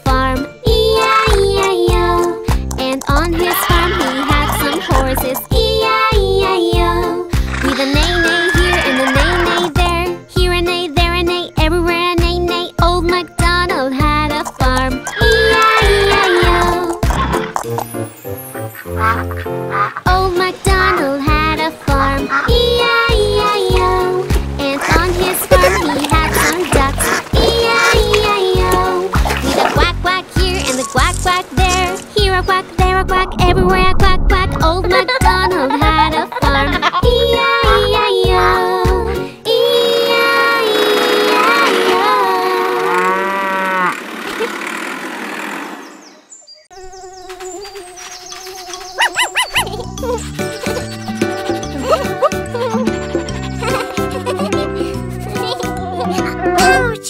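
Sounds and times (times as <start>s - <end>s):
upbeat instrumental children's music: 0.0s - 42.5s, 48.2s - 57.0s
cartoon duck quacking: 3.2s - 5.4s, 7.8s - 9.8s
cow mooing: 42.5s - 44.0s.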